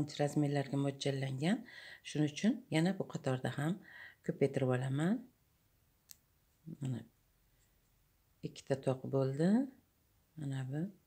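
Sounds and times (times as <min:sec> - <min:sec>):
person speaking: 0:00.0 - 0:05.3, 0:06.6 - 0:07.2, 0:08.4 - 0:09.8.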